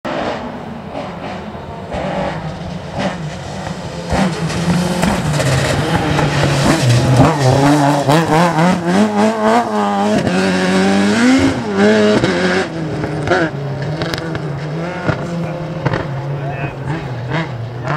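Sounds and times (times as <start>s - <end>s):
rally car engine at full throttle: 0.0s - 17.9s.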